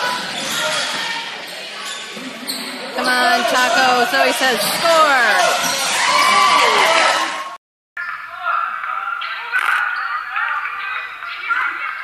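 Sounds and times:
indistinct voices: 0:03.0 - 0:07.4.

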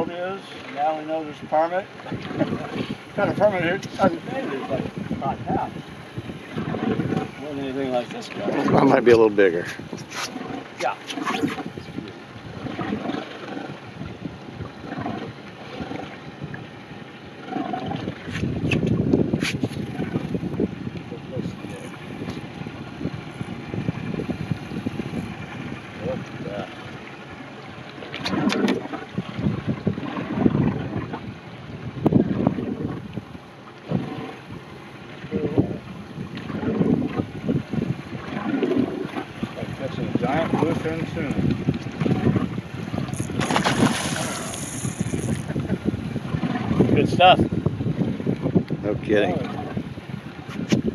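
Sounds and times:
waves slapping boat hull: 0:00.0 - 0:50.9
wind buffeting microphone: 0:00.0 - 0:50.9.

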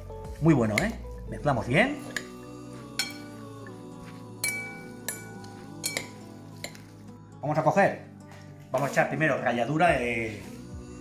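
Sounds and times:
background music: 0:00.0 - 0:11.0
cutlery clinking against glass bowl: 0:02.0 - 0:02.4, 0:03.0 - 0:03.3, 0:04.4 - 0:06.9.

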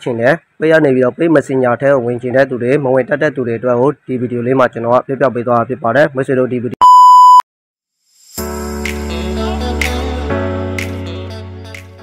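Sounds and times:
man speaking: 0:00.0 - 0:06.8
loud electronic beep: 0:06.8 - 0:07.4.

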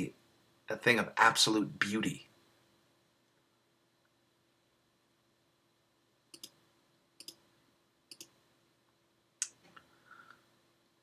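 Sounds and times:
computer mouse clicks: 0:06.3 - 0:06.6, 0:07.2 - 0:07.4, 0:08.1 - 0:08.4.

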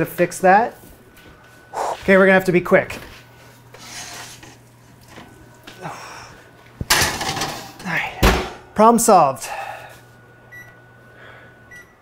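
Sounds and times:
baking sheet scraping clatter: 0:03.0 - 0:04.6.

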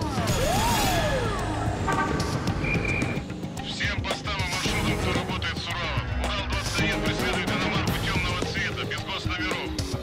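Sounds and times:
car horn toot: 0:01.8 - 0:03.2.

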